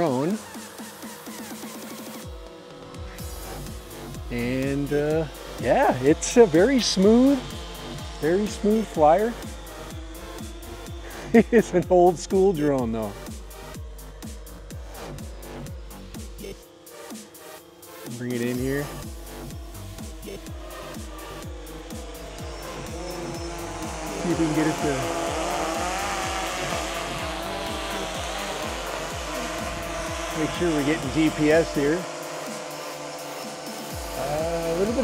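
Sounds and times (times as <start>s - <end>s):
background music with steady beat: 0.0s - 35.0s
quadcopter motors whining: 0.0s - 35.0s.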